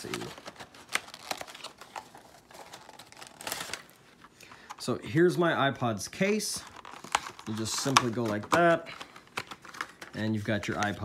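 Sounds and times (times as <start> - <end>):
plastic packaging crinkling: 0.0 - 4.9, 6.5 - 11.0.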